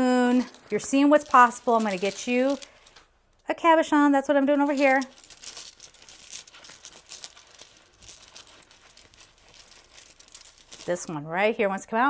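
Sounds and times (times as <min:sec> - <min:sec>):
hands rummaging crystals: 0:00.0 - 0:03.2, 0:04.5 - 0:11.2.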